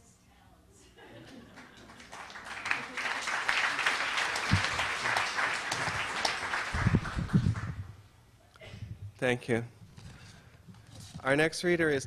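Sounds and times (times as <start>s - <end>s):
audience applauding: 1.5s - 8.0s.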